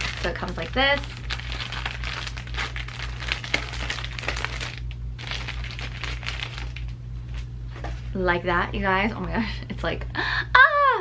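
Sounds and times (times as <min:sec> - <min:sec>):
plastic bag crinkling: 0:00.0 - 0:07.5.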